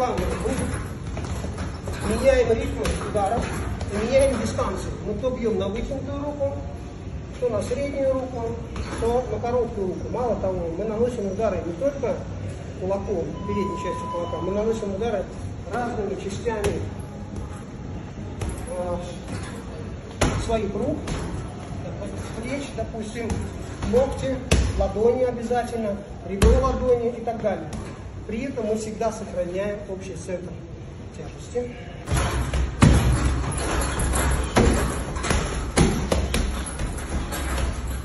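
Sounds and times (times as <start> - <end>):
man speaking: 0.0 - 0.8, 7.3 - 16.9
punches thudding on heavy bag: 32.1 - 38.0.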